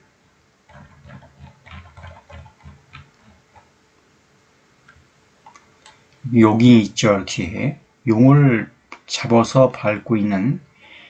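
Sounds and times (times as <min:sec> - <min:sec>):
mouse scroll wheel ticking: 0:00.7 - 0:03.7.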